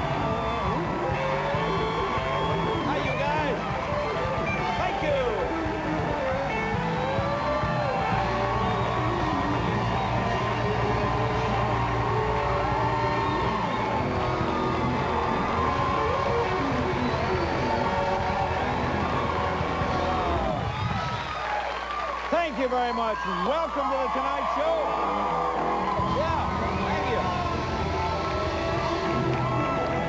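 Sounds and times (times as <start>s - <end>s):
live band playing theme music: 0.0s - 21.7s, 25.0s - 30.0s
studio audience cheering: 0.0s - 30.0s.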